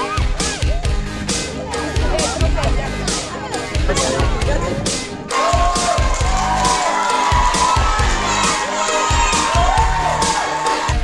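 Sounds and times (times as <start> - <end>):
background music with steady beat: 0.0 - 11.0
children cheering and shouting: 0.0 - 11.0.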